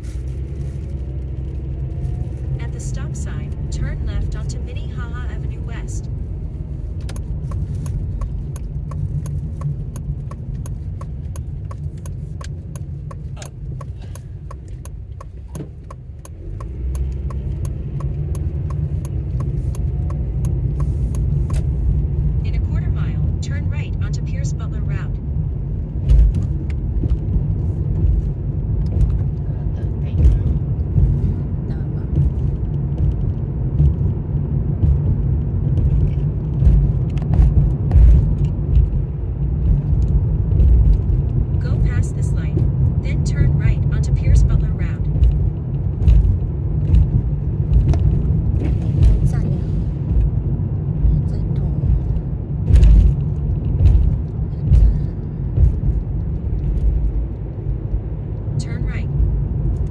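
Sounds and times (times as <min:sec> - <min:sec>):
road and engine rumble: 0:00.0 - 0:59.9
turn signal ticking: 0:01.0 - 0:59.9.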